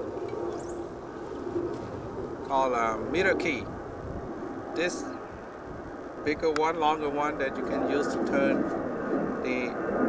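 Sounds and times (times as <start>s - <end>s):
outdoor background noise: 0.0s - 10.0s
high bird chirp: 0.4s - 1.4s.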